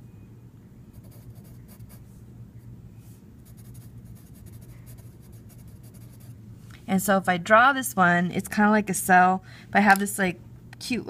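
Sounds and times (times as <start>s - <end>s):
pencil scratching on paper: 0.9s - 2.0s, 3.4s - 6.3s.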